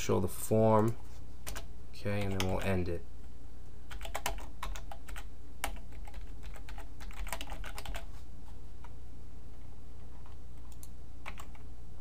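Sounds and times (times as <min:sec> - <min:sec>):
computer keyboard typing: 0:00.8 - 0:02.7, 0:03.9 - 0:08.1, 0:10.6 - 0:11.6.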